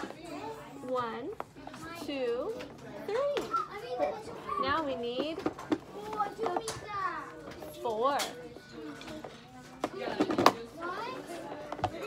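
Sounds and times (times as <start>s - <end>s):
young children talking: 0.0s - 12.0s.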